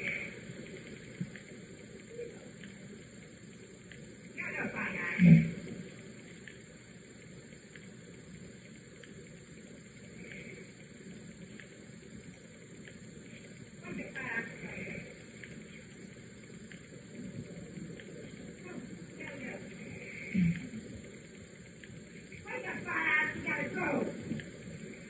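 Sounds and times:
steady hiss: 0.0s - 25.0s
muffled voice through a wall: 4.4s - 5.6s, 13.8s - 15.2s, 18.6s - 20.8s, 22.4s - 24.3s.

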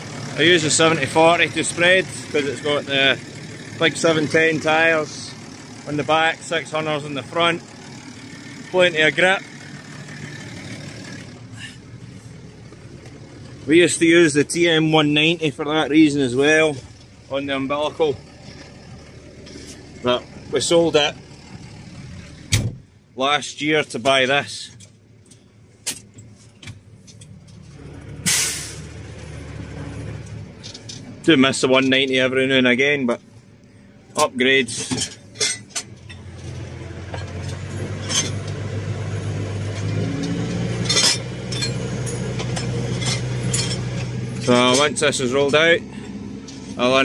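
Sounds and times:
tractor diesel engine humming: 0.0s - 47.0s
sharp metallic clinks: 39.8s - 45.6s.

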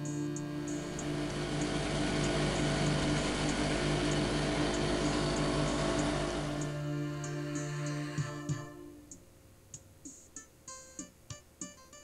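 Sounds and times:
outboard motor running: 0.0s - 8.4s
background music: 0.0s - 12.0s.

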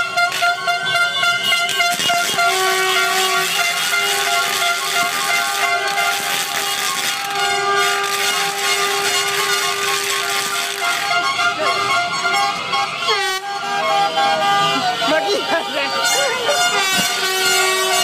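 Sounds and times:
car horns honking: 0.0s - 18.0s
street traffic noise: 0.0s - 18.0s.

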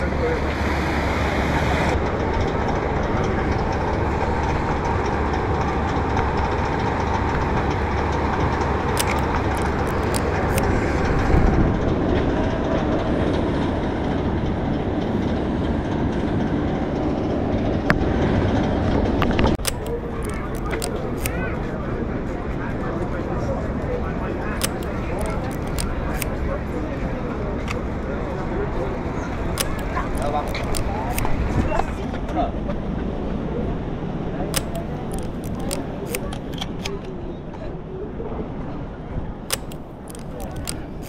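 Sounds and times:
loud outdoor rumble: 0.0s - 36.9s
light sharp clicks: 8.9s - 11.0s, 19.3s - 21.5s, 24.6s - 26.4s, 29.6s - 31.4s, 34.5s - 37.1s, 39.5s - 41.0s.

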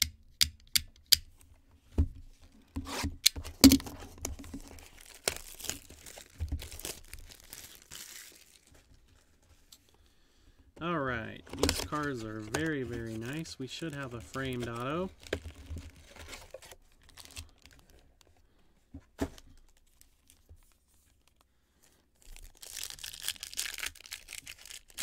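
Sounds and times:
plastic shrink wrap tearing: 3.6s - 9.2s, 11.4s - 18.3s, 22.2s - 25.0s
person speaking: 10.8s - 15.3s
box handling clicks: 11.4s - 13.0s.

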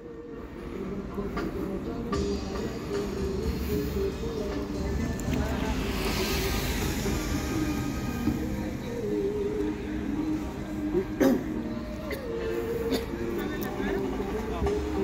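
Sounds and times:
city traffic rumble: 0.0s - 15.0s
music with held notes: 0.0s - 15.0s
hiss: 5.6s - 9.0s.

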